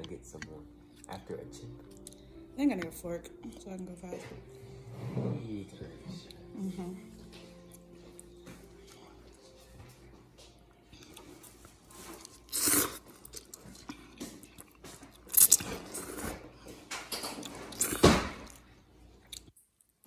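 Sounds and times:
person chewing and biting: 10.9s - 16.6s.

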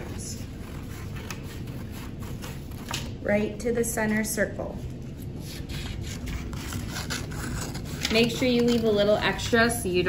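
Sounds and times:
low room hum: 0.0s - 10.0s
scissors snipping paper: 5.5s - 9.2s.

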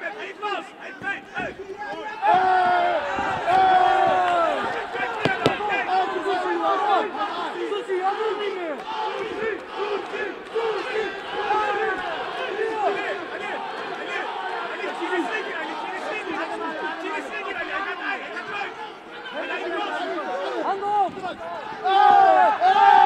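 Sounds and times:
crowd shouting and yelling: 0.0s - 23.0s.

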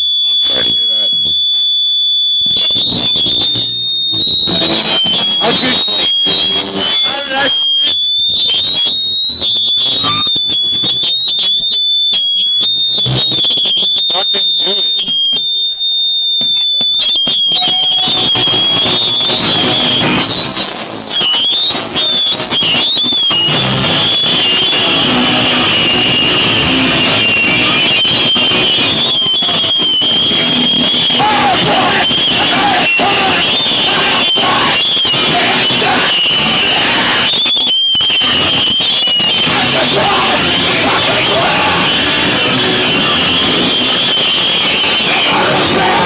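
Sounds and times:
amplifier feedback squeal: 0.0s - 46.0s
scattered noise: 2.4s - 46.0s
bass guitar: 2.5s - 11.2s, 18.0s - 46.0s
drums: 2.5s - 11.7s, 16.9s - 46.0s
shouted vocals: 30.8s - 37.7s, 39.2s - 43.7s, 44.8s - 46.0s.

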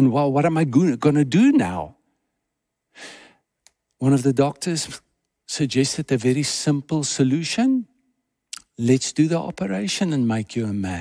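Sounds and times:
man drawing a breath: 2.9s - 3.4s.

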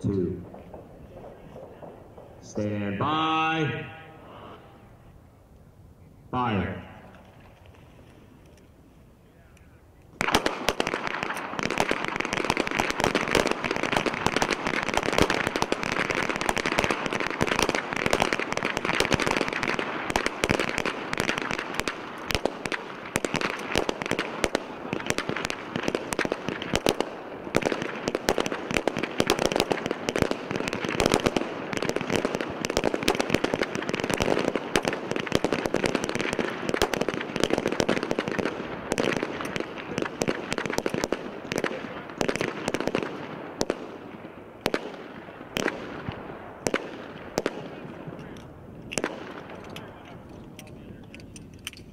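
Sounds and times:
pistols firing: 0.1s - 2.7s, 10.2s - 51.9s.

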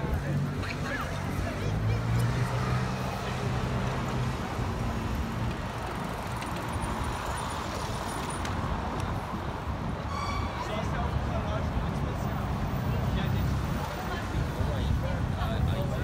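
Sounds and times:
cars and scooters driving: 0.0s - 16.0s.

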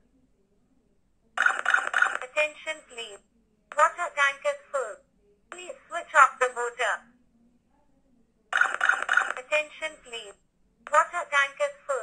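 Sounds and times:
recorded voice alarm message: 1.4s - 7.0s, 8.6s - 12.0s.

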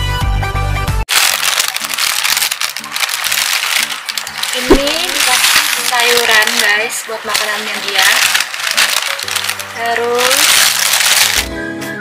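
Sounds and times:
plastic bag crinkling: 1.1s - 11.5s
faint background music: 1.1s - 12.0s.

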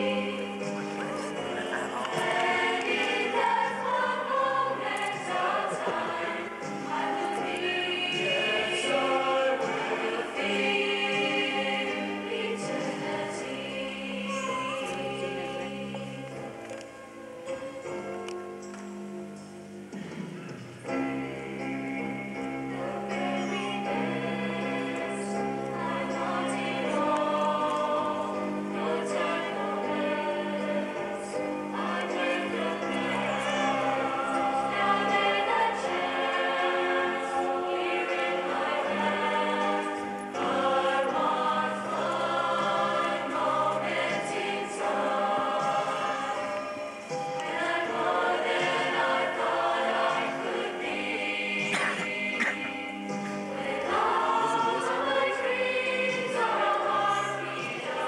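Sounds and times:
choir singing: 0.0s - 16.8s, 20.9s - 58.0s.

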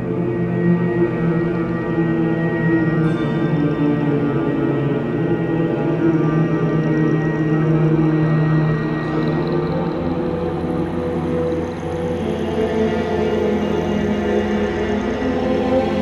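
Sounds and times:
dark ambient drone music: 0.0s - 16.0s.

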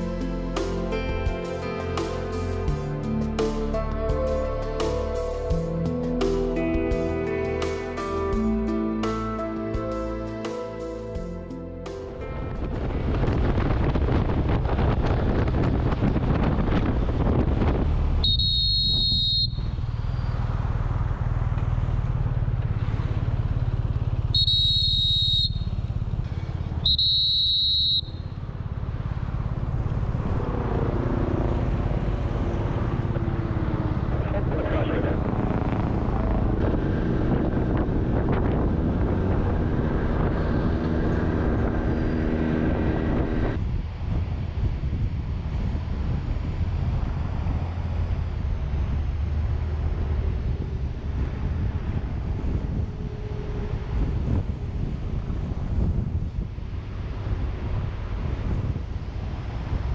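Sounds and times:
wind rushing over microphone: 12.1s - 21.6s, 28.4s - 59.9s
high whistle tones: 18.2s - 20.3s, 24.4s - 25.8s, 26.8s - 28.4s
motorcycle engine running: 19.4s - 43.6s.

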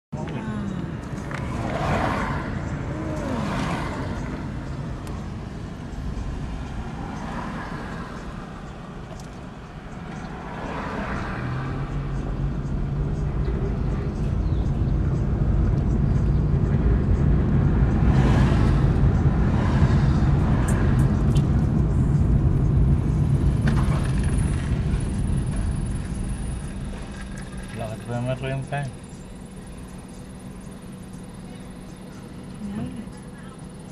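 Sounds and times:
car engine drone: 0.1s - 33.9s
low traffic rumble: 0.1s - 33.9s.

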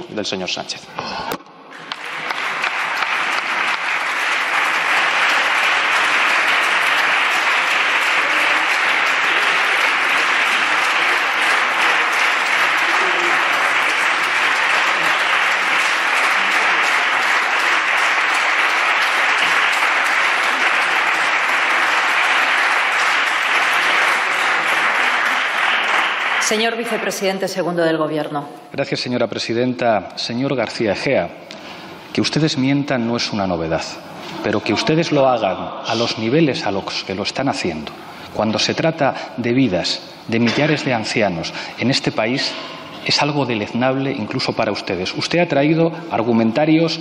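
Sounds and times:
crowd applauding: 1.7s - 27.5s.

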